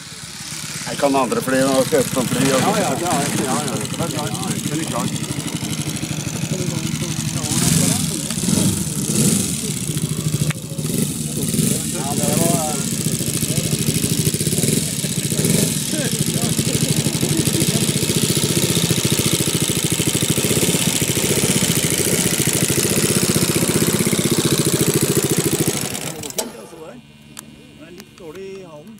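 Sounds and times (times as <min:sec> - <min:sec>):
model aircraft engine running: 0:00.0 - 0:28.9.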